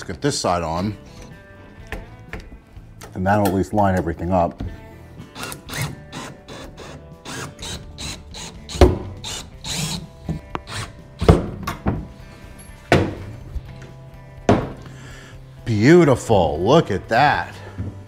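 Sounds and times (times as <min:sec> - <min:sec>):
background music: 0:00.0 - 0:18.0
cordless drill driving screws: 0:05.4 - 0:10.0.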